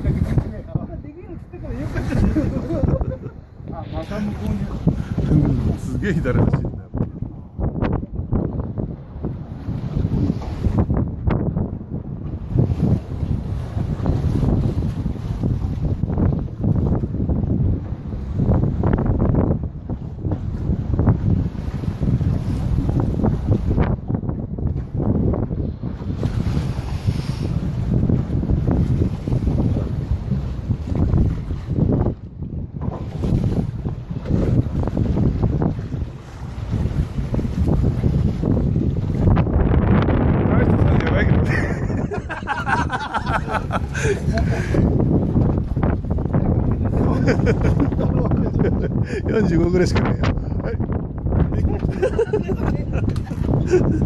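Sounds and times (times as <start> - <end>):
choppy waves: 0.0 - 54.0
wind buffeting microphone: 0.0 - 54.0.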